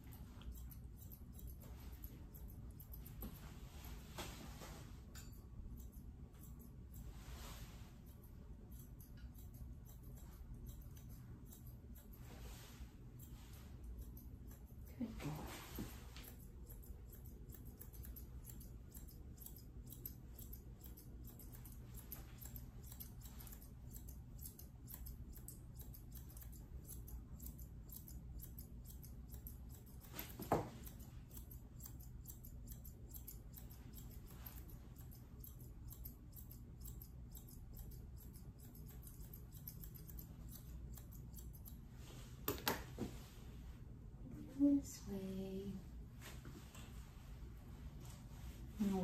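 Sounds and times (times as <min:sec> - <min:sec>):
shears snipping hair: 0:00.0 - 0:43.2, 0:48.0 - 0:49.0.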